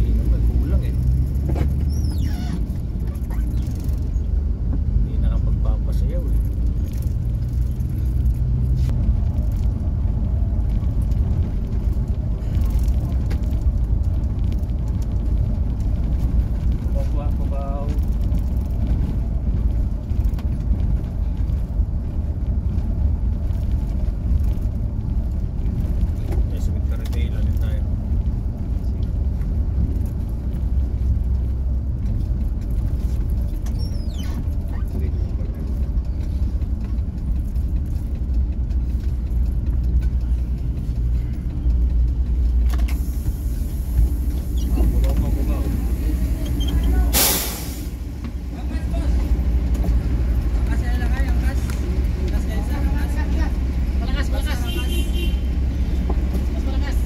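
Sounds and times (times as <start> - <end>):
bus engine and road rumble: 0.0 - 57.0
air brakes hissing: 42.8 - 45.0, 46.0 - 48.1.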